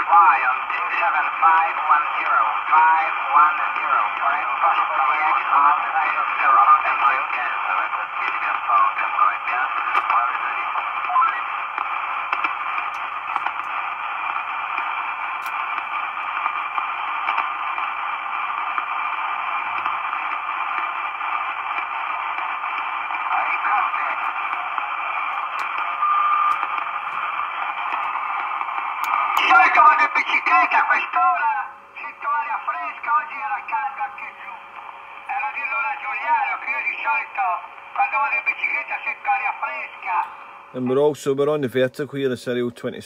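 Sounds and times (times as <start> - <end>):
faint garbled radio voices: 0.0 - 43.0
radio static hiss: 0.0 - 43.0.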